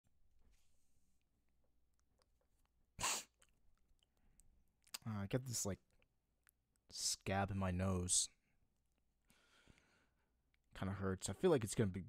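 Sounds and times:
sharp breath through nose: 3.0s - 3.3s.

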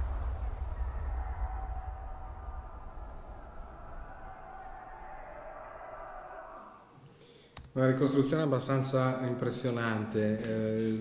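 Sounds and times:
deep battlefield rumble: 0.0s - 5.2s.

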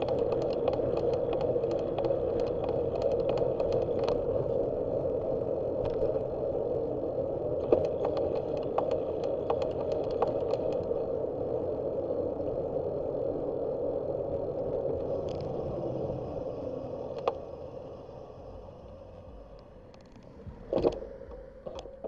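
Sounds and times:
bicycle tyres on asphalt: 0.0s - 22.0s
wind on microphone: 0.0s - 22.0s
light clicks and rattles: 7.6s - 10.9s.

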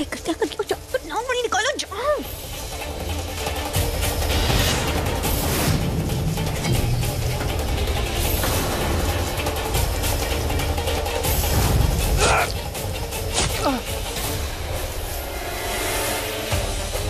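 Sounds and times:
dramatic background score: 0.0s - 17.0s.

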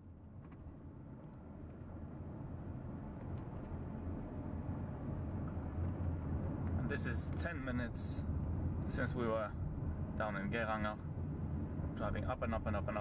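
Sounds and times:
car engine and road rumble: 0.0s - 13.0s.

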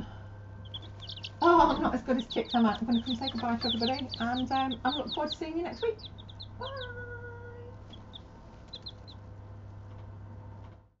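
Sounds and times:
chicks peeping: 0.0s - 10.1s
steady low hum: 0.0s - 11.0s.

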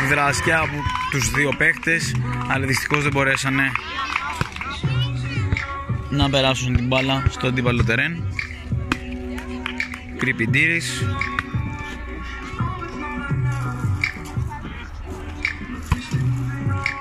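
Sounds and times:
music with bass line: 0.0s - 17.0s.

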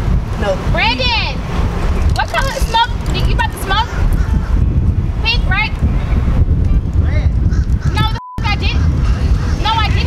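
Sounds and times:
wind buffeting microphone: 0.0s - 10.0s
geese honking: 7.5s - 10.0s.

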